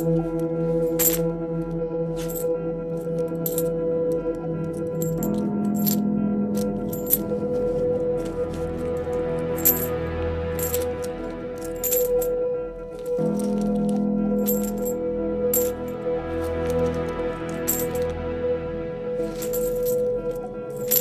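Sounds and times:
coins dropping and clinking: 0.0s - 1.3s, 2.2s - 3.7s, 4.6s - 18.2s, 19.2s - 21.0s
background music with held tones: 0.0s - 21.0s.

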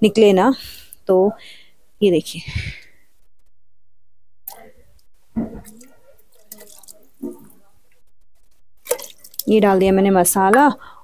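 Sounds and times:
liquid splashing and dripping: 5.4s - 7.6s, 8.8s - 9.6s.

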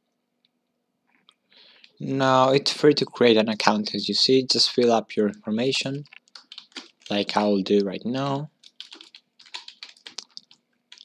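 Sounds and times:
typing on computer keyboard: 6.0s - 8.0s, 8.6s - 11.0s.

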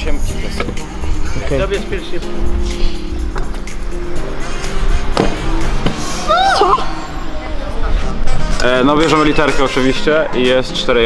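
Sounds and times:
background music with low beat: 0.0s - 6.5s.

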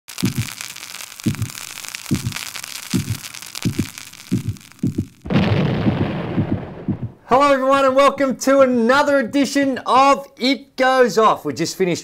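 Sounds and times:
burning fuse crackling sizzle: 0.0s - 6.9s
low heartbeat-like thumps: 0.2s - 0.6s, 1.3s - 7.3s
loud explosion: 3.0s - 7.3s.

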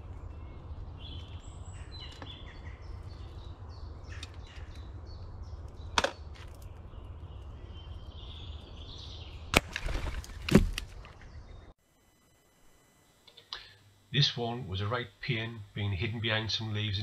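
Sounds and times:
small birds chirping: 0.0s - 11.8s
low background hum: 0.0s - 17.0s.

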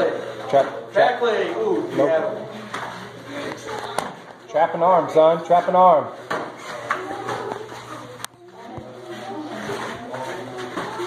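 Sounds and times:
faint voices echoing in a hall: 0.0s - 11.0s.

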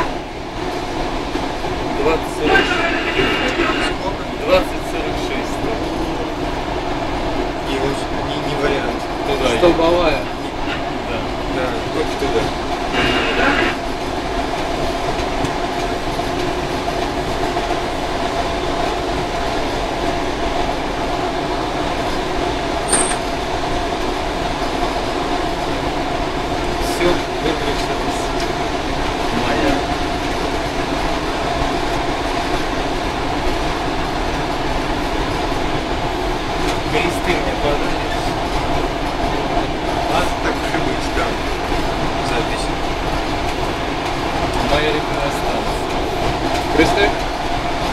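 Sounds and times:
electric train running hum: 0.0s - 47.9s.

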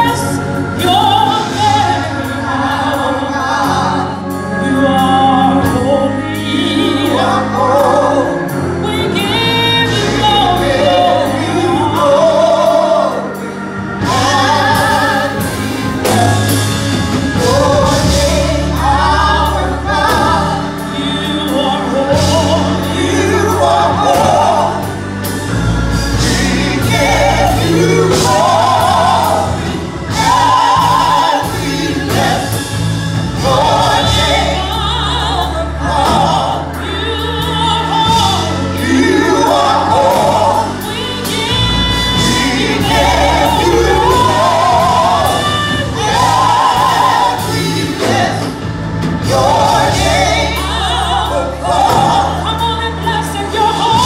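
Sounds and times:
gospel group singing: 0.0s - 54.0s
keyboard accompaniment: 0.0s - 54.0s
bass and steady beat: 13.8s - 54.0s.

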